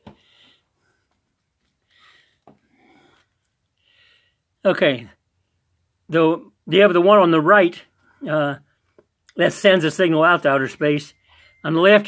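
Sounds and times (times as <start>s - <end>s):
soft breaths: 0.0s - 4.6s, 11.1s - 11.7s.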